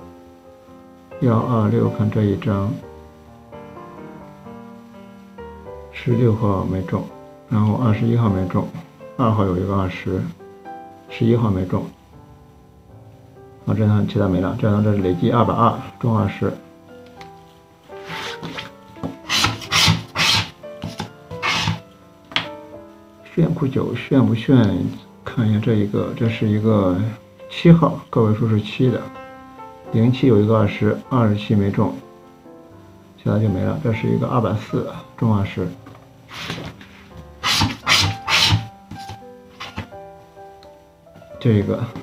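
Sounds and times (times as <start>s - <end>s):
light background music: 0.0s - 42.0s
paper tickets rubbing on table: 18.0s - 21.8s, 36.3s - 39.9s.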